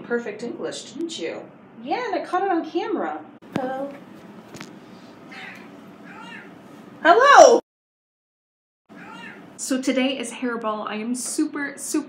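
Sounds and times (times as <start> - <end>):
cat meowing: 5.3 - 6.6, 8.9 - 9.4.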